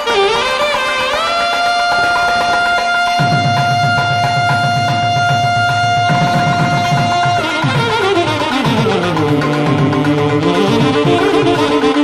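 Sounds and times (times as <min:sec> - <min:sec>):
fast low drum pattern: 0:01.1 - 0:12.0.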